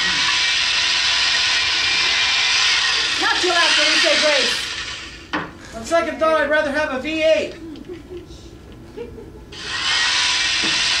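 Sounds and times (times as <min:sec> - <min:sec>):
electric carving knife buzzing: 0:00.0 - 0:05.3, 0:09.6 - 0:11.0.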